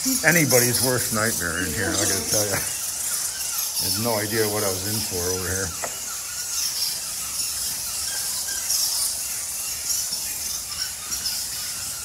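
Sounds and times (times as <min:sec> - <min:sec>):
bats squeaking and chittering: 0:00.0 - 0:12.0.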